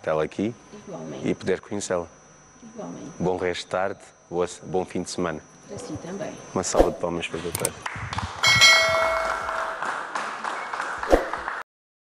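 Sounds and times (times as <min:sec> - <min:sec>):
bright bell-like chime: 0:08.4 - 0:09.9
studio audience applauding: 0:09.2 - 0:11.6.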